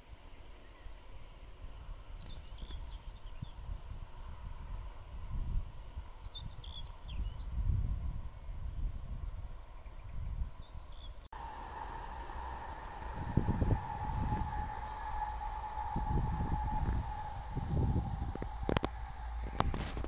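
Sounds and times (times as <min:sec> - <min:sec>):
high-pitched mechanical whine: 0:11.4 - 0:20.0
low rustling: 0:11.4 - 0:20.0.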